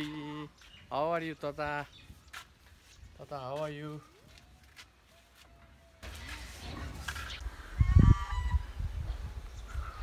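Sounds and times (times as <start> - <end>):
wind rumble on microphone: 6.8 - 10.0.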